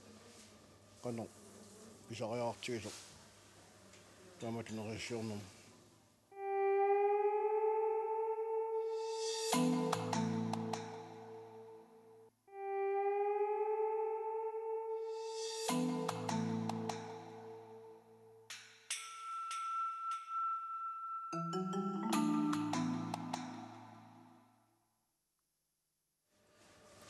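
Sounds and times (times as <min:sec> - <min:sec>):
man speaking: 0:02.1 - 0:03.0, 0:04.4 - 0:05.5.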